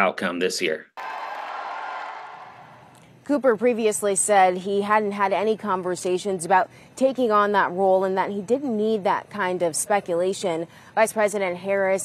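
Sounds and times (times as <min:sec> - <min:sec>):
crowd applause: 0:01.0 - 0:02.9.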